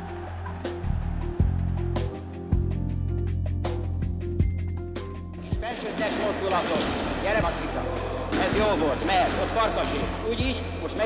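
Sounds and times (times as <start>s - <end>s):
music: 0.0s - 11.0s
footballs thudding: 8.3s - 10.6s.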